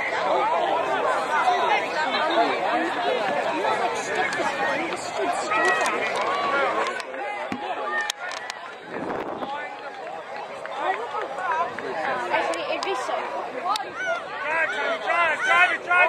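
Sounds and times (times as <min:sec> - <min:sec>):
crowd chattering and calling out: 0:00.0 - 0:16.0.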